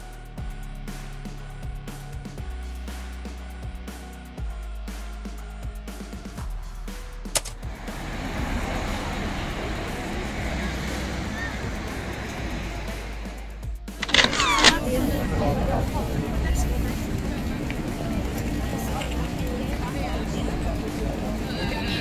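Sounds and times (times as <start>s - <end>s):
traffic: 7.4s - 22.0s
people's voices: 8.0s - 22.0s.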